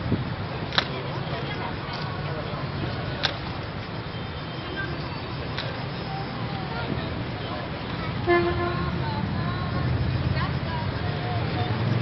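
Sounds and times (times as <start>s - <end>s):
city traffic rumble: 0.0s - 12.0s
vehicle horn toot: 8.2s - 9.1s.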